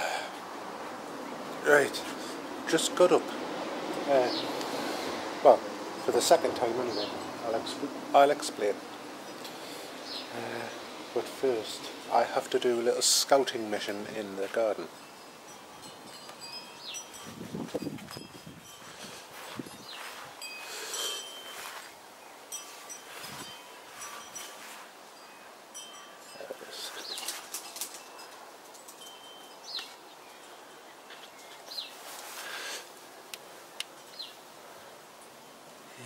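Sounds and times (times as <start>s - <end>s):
bird chirps: 29.4s - 32.0s.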